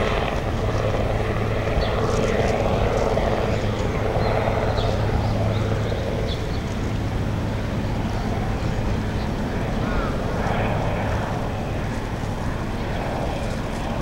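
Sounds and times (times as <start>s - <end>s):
faint voices of passers-by: 0.0s - 14.0s.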